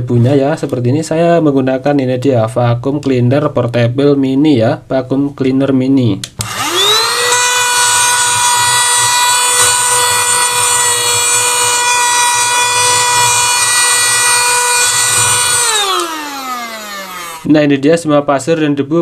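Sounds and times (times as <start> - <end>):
mini vacuum cleaner whining: 6.4 - 17.5.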